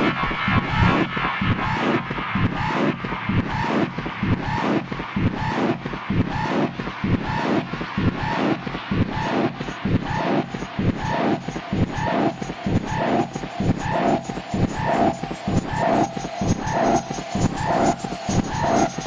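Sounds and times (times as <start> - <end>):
dark electronic techno: 0.0 - 19.0.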